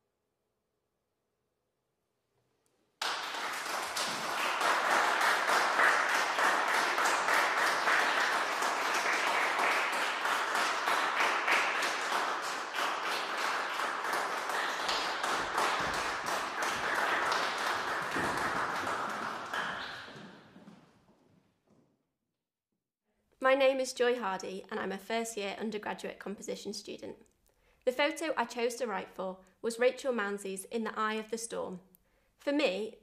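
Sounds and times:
audience applauding: 3.0 - 20.8.

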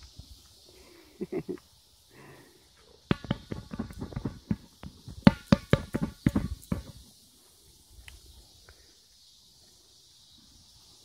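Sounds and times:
plastic ball thumping: 3.1 - 7.0.

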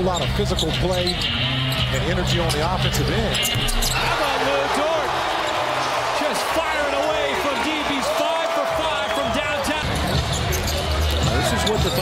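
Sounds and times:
crowd noise: 0.0 - 12.0
sneaker squeaks: 3.4 - 4.1, 9.8 - 12.0.

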